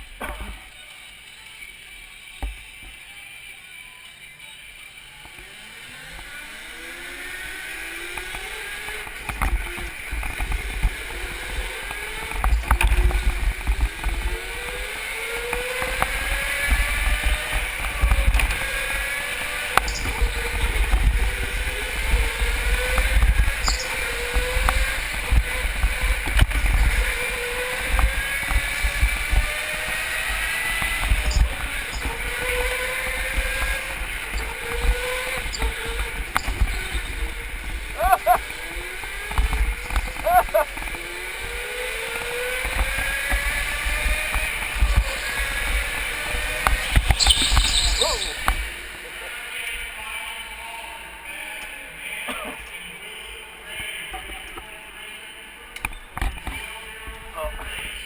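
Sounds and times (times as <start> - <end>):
go-kart motor whine: 0.0 - 54.8
short high squeals: 47.2 - 48.4.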